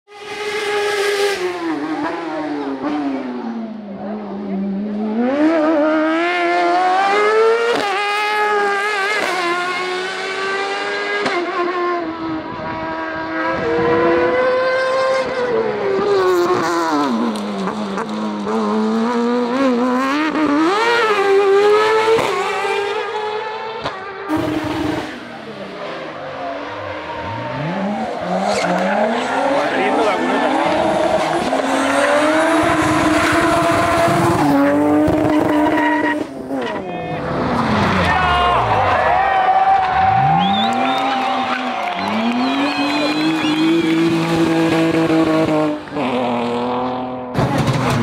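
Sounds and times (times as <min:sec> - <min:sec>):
racing car engine revving: 0:00.1 - 0:48.0.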